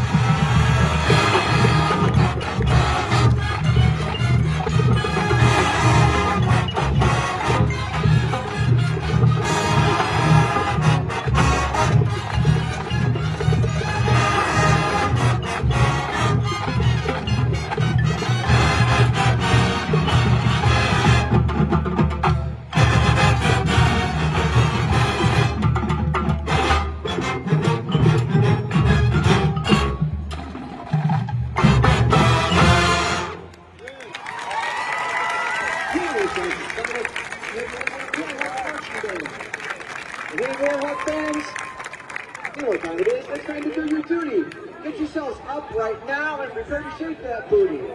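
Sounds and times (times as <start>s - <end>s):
marching band playing: 0.0s - 45.4s.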